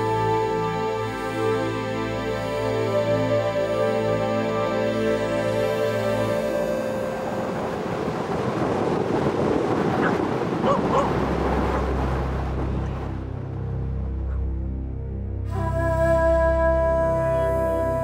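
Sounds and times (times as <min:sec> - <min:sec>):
wind and surf rushing: 0:00.0 - 0:14.3
soft background music: 0:00.0 - 0:18.0.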